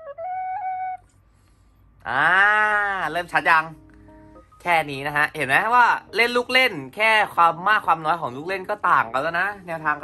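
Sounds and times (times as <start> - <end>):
young man's drawn-out vocal sound: 2.0 - 3.1.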